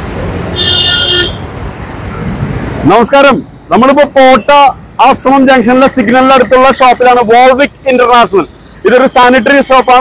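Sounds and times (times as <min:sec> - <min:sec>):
highway traffic rushing: 0:00.0 - 0:10.0
man's voice: 0:02.8 - 0:10.0.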